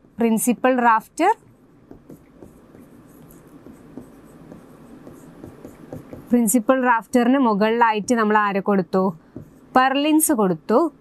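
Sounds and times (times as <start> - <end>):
stylus tapping and scratching on screen: 0.0 - 10.8.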